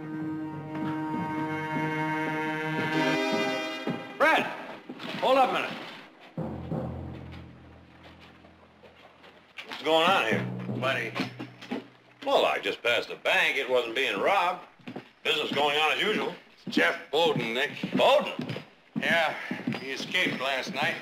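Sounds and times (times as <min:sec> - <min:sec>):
men talking: 0:04.2 - 0:05.8, 0:09.7 - 0:11.4, 0:12.2 - 0:21.0
dramatic television score: 0:06.4 - 0:12.8.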